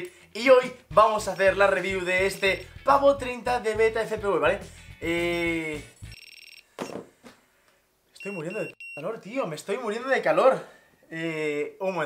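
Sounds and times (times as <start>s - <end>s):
high-pitched electronic beep: 6.1s - 6.6s.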